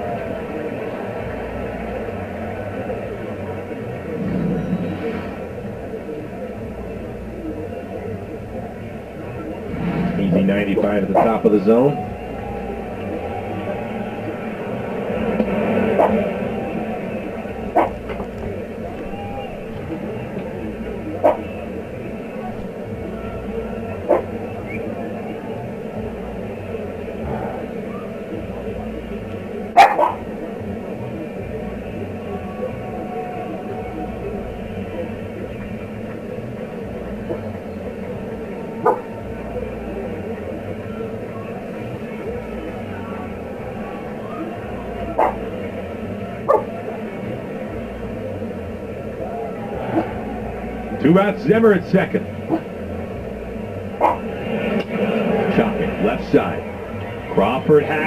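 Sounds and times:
steady background noise: 0.0s - 58.0s.

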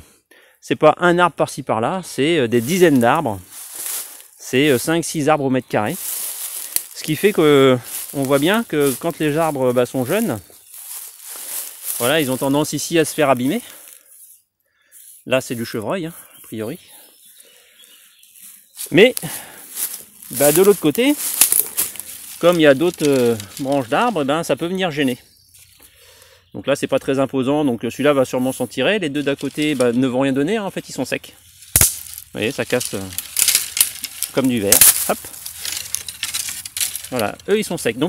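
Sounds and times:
quiet outdoor background: 0.0s - 38.0s
man speaking: 0.7s - 3.5s, 4.4s - 6.0s, 7.0s - 10.5s, 11.9s - 13.8s, 15.3s - 16.9s, 18.9s - 19.5s, 20.3s - 21.3s, 22.4s - 25.2s, 26.6s - 31.4s, 32.3s - 33.2s, 34.3s - 35.4s, 37.1s - 38.0s
dry saplings snapping and crackling: 2.6s - 4.8s, 5.9s - 14.2s, 18.8s - 24.9s, 29.2s - 38.0s.

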